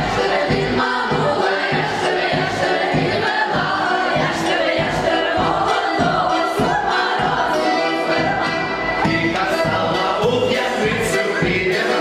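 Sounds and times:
group singing a folk song: 0.0s - 12.0s.

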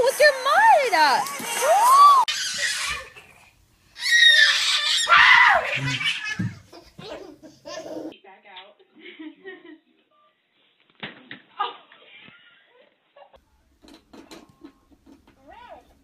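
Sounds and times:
toddlers laughing and squealing: 1.2s - 8.2s
adult laughing: 5.6s - 8.0s.

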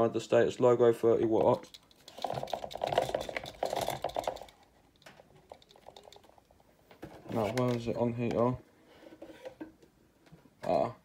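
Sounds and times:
handling clicks and rubbing: 1.4s - 8.5s.

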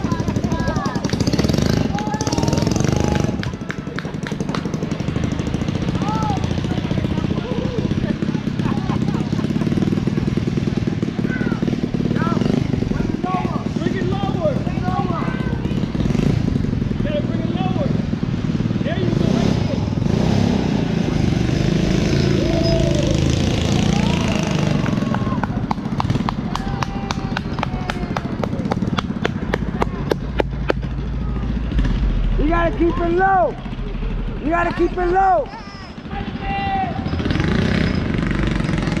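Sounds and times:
indistinct voices: 29.4s - 39.0s.

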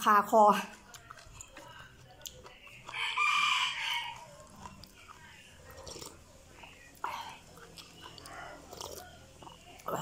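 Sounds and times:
rooster crowing: 2.9s - 4.4s.

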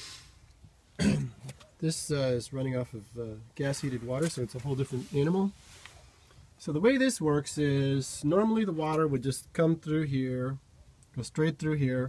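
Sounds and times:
man clearing his throat: 1.0s - 1.5s
man speaking: 1.8s - 5.6s, 6.6s - 10.6s, 11.2s - 12.0s.

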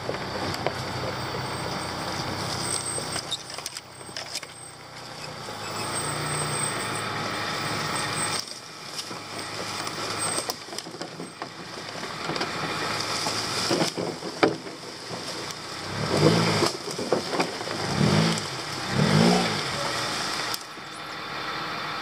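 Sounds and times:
car engine running: 0.0s - 22.0s.

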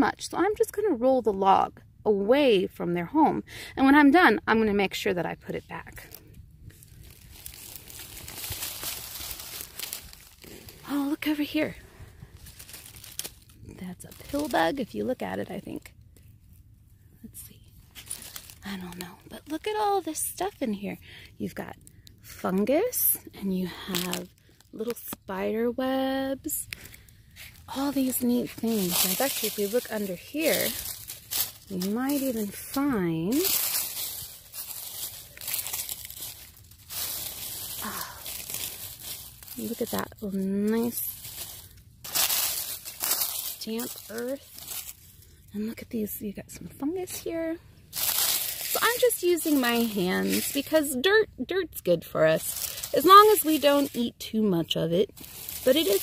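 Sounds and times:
dry leaves rustling and crackling: 4.9s - 16.7s, 17.3s - 20.9s, 21.5s - 56.0s.

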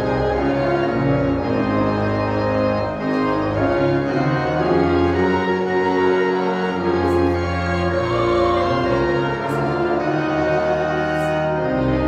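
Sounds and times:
church organ playing chords: 0.0s - 12.0s.

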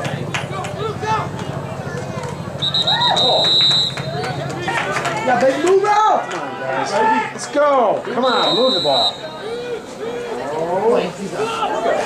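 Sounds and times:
spectators talking and shouting: 0.0s - 12.0s
referee whistle blast: 2.6s - 4.3s, 8.2s - 9.6s.

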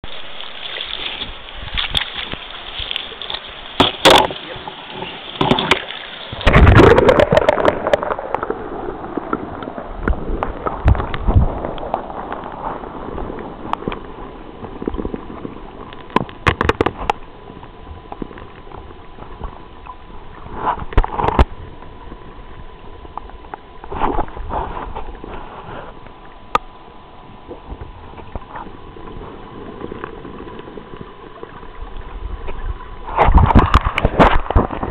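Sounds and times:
muffled underwater stream rushing: 0.0s - 34.9s
water gurgle: 0.0s - 34.9s.

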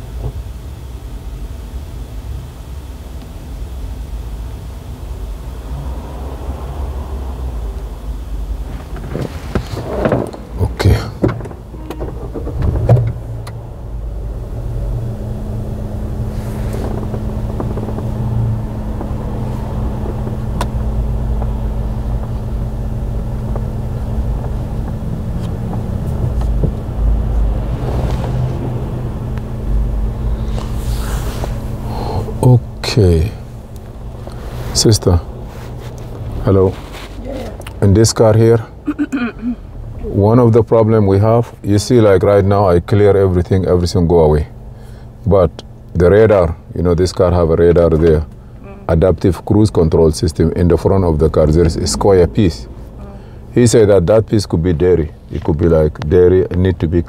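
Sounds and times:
low rumble inside car: 0.0s - 57.0s
steady low hum: 0.0s - 57.0s
knocks and rustles: 8.7s - 13.3s.

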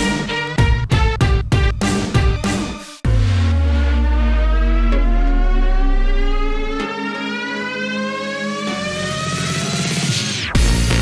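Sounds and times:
deep bass drone: 3.0s - 7.0s
rising synth tone: 3.0s - 11.0s.

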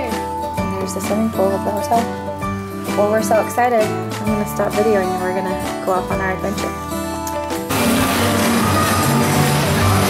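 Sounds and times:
music with low bass line: 7.2s - 10.0s.

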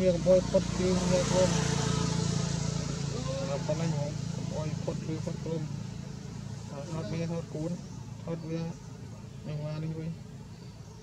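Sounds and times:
vehicle engine running: 0.0s - 11.0s
voices talking: 0.0s - 11.0s.

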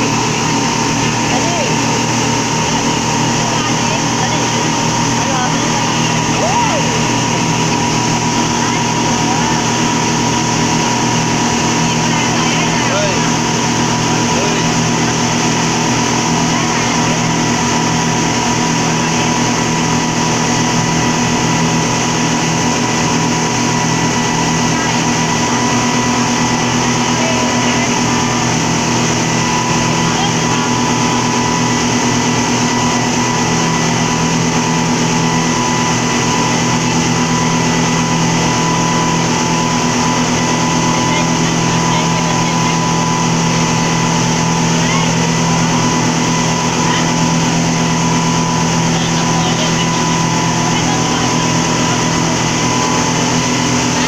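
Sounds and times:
speedboat engine drone: 0.0s - 54.0s.

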